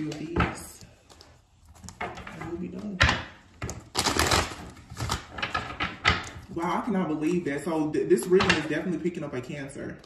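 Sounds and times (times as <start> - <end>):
cards being shuffled: 3.6 - 6.4.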